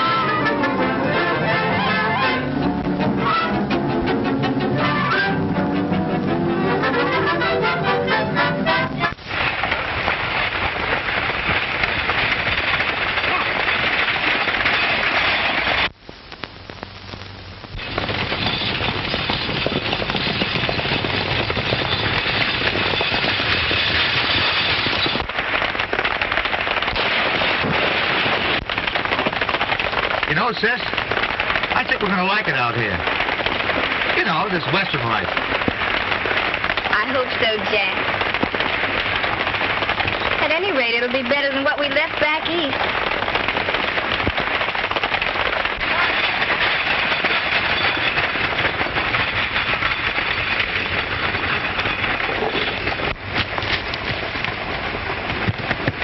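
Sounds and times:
coach wheels rattling: 0.0s - 16.0s, 17.8s - 56.0s
rapid horse hoofbeats: 17.8s - 56.0s.

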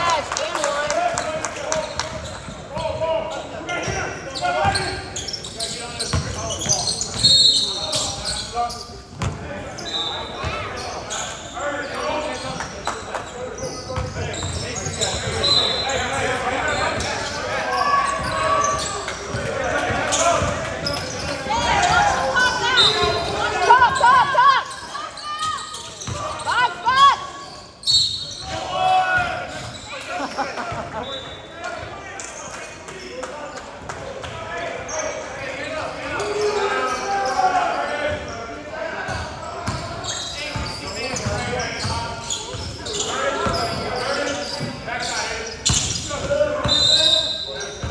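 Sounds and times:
people calling out: 19.6s - 29.6s.

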